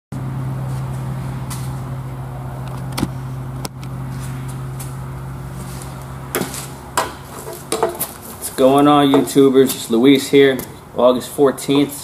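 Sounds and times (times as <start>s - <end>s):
low mechanical hum: 0.2s - 12.0s.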